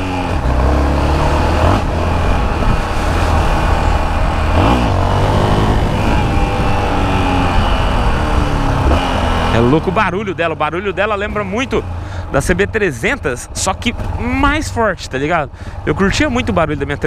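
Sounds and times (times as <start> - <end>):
motorcycle engine under throttle: 0.0 - 12.0
wind noise on microphone: 1.8 - 9.5.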